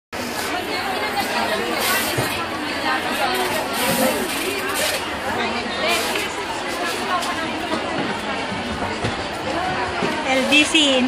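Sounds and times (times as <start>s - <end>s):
chatter of people talking: 0.2s - 11.0s.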